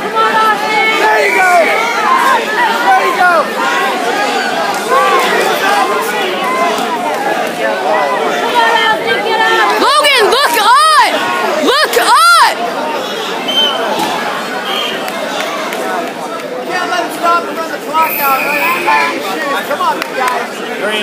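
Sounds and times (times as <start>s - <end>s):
crowd shouting and talking: 0.0s - 21.0s.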